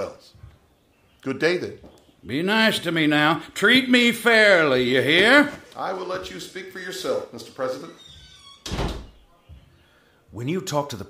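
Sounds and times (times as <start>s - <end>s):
door shutting with heavy thud: 8.1s - 9.2s.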